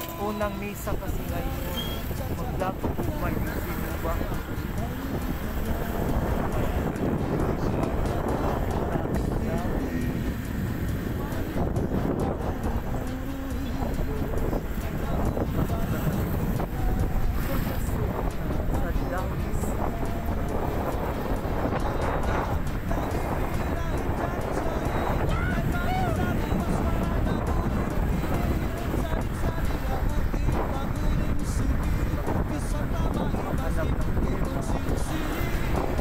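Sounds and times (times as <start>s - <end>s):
vehicle road noise: 0.0s - 36.0s
wind buffeting microphone: 0.0s - 36.0s.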